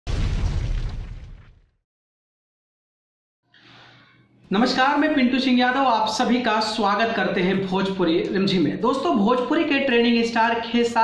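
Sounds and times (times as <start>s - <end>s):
explosion deep boom: 0.0s - 1.7s.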